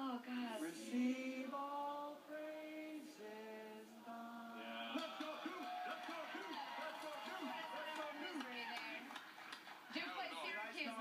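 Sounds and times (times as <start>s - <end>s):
people talking on television: 4.2s - 11.0s.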